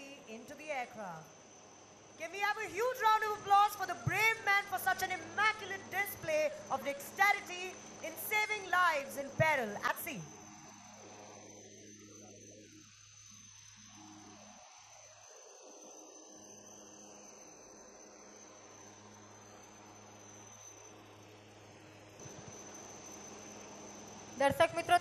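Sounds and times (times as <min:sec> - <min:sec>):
faint steady hum: 0:00.0 - 0:25.0
thin high-pitched whine: 0:00.0 - 0:25.0.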